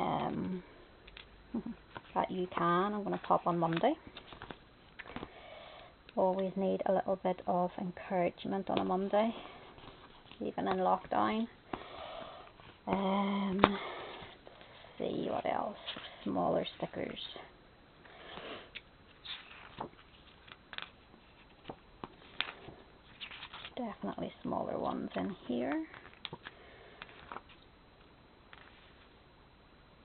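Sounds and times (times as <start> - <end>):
paper rustling: 3.7 - 5.3, 19.1 - 23.8, 25.2 - 27.6.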